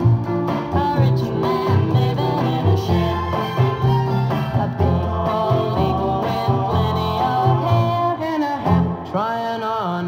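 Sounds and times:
pop song from vinyl record: 0:00.0 - 0:10.0.

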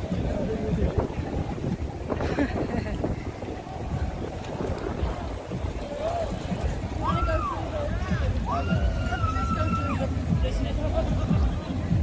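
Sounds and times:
indistinct crowd voices: 0:00.0 - 0:12.0
wind buffeting microphone: 0:00.0 - 0:12.0.

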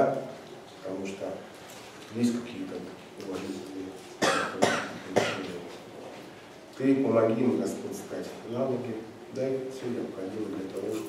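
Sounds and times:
person coughing: 0:04.2 - 0:05.5.

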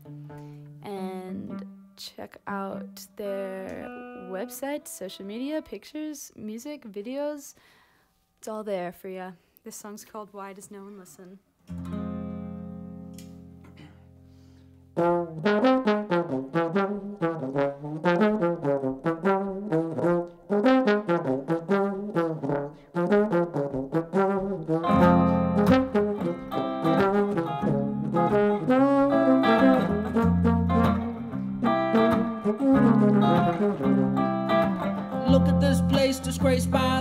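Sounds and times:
electric guitar chords: 0:00.0 - 0:02.0, 0:03.4 - 0:05.4, 0:11.7 - 0:22.5, 0:23.1 - 0:37.0
trombone melody: 0:14.9 - 0:37.0.

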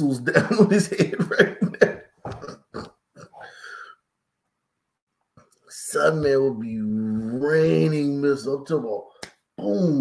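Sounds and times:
man chuckling: 0:00.2 - 0:03.8.

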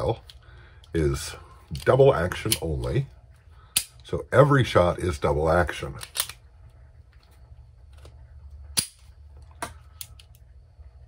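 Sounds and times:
pistol mechanism clicking: 0:06.0 - 0:06.4.

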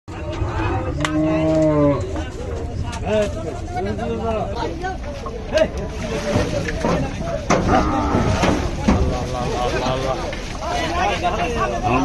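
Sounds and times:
cow mooing: 0:01.1 - 0:02.1, 0:07.6 - 0:08.7.

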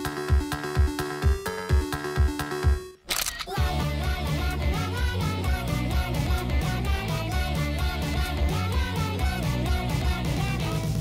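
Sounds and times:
theme music with sliding notes: 0:00.0 - 0:03.0
camera shutter click: 0:03.1 - 0:03.6.

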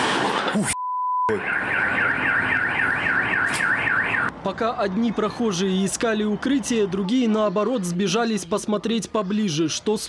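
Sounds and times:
car alarm sweeping tone: 0:00.8 - 0:04.3.

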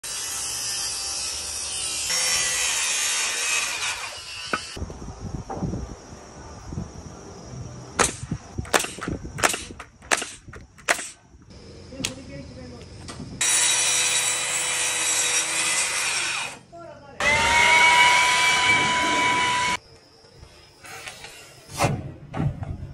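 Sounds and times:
nail gun shots: 0:08.0 - 0:11.2.

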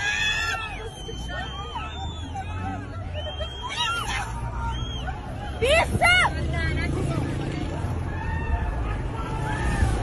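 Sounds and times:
people shouting high-pitched: 0:00.0 - 0:06.4
crowd babble: 0:00.0 - 0:10.0.

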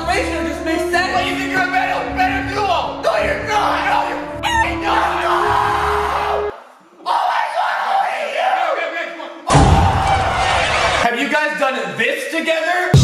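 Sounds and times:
men shouting excitedly: 0:00.3 - 0:11.1.

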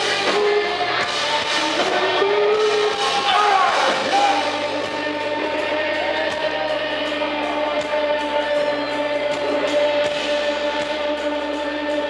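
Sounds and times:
person singing: 0:00.0 - 0:12.0
rock band playing: 0:00.0 - 0:12.0.

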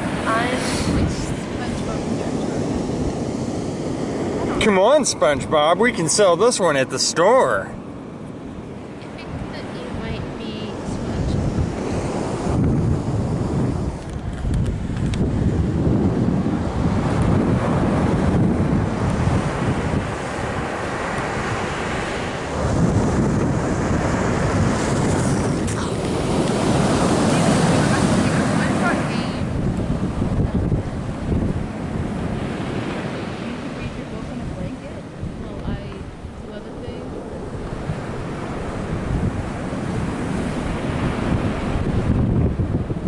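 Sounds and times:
ocean surf breaking: 0:00.0 - 0:43.0
wind buffeting microphone: 0:00.0 - 0:43.0.

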